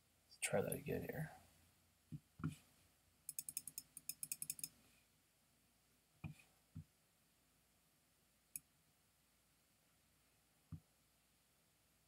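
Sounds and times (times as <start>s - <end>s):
computer mouse clicks: 3.3s - 4.8s.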